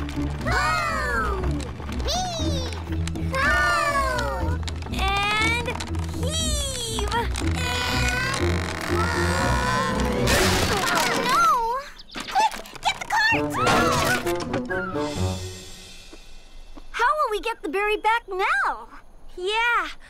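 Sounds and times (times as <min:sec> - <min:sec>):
cartoon background music with bass: 0:00.0 - 0:11.3, 0:13.3 - 0:16.1
wooden wheel clattering: 0:00.0 - 0:11.5.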